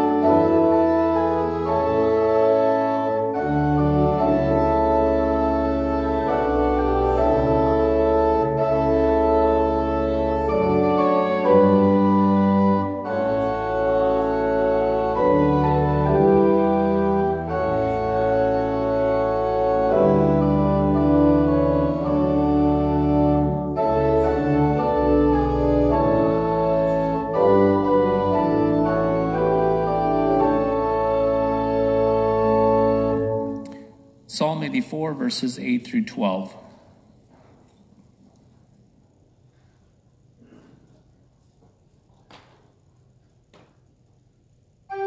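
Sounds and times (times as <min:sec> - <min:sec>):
church organ playing slow chords: 0:00.0 - 0:37.0, 0:44.0 - 0:45.0.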